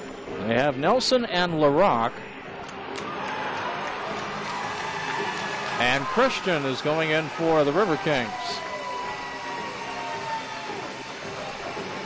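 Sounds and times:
arena crowd hubbub: 1.6 - 12.0.

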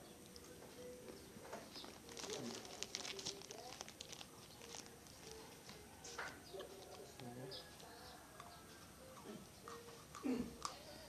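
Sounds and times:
plastic pouch crinkling: 1.6 - 7.9.

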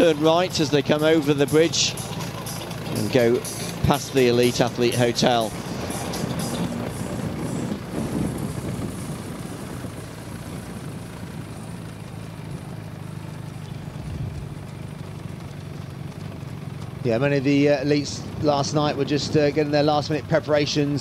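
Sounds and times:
road noise: 0.0 - 21.0
vehicle engine humming: 0.0 - 21.0.

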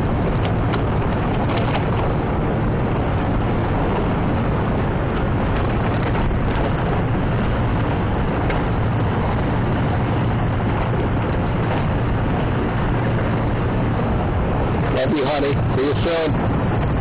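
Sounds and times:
churning wake: 0.0 - 17.0
low rumble of ship engines: 0.0 - 17.0
wind rushing over microphone: 0.0 - 17.0.

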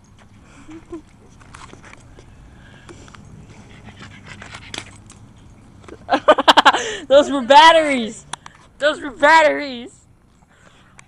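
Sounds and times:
handling noise: 0.0 - 6.2
boy laughing and yelling: 6.1 - 8.2.

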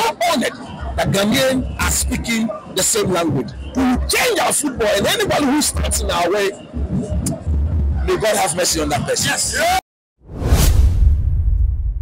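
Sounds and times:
whoosh: 10.2 - 12.0
deep rumble: 10.3 - 12.0.

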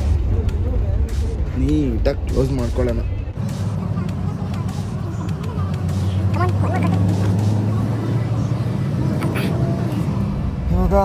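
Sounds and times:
bus engine drone: 0.0 - 11.0
road noise: 0.0 - 11.0.

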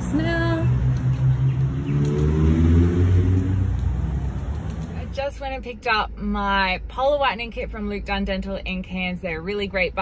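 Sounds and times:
car engine accelerating: 0.0 - 5.2.

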